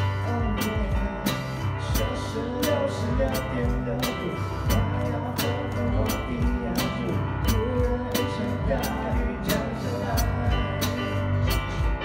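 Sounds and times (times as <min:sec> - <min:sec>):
bass: 0:00.0 - 0:12.0
guitar: 0:00.0 - 0:12.0.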